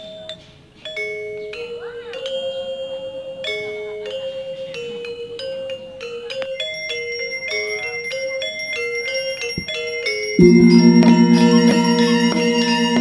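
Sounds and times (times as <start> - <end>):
gamelan metallophones playing: 10.4 - 13.0
steady high ringing tone: 10.4 - 13.0.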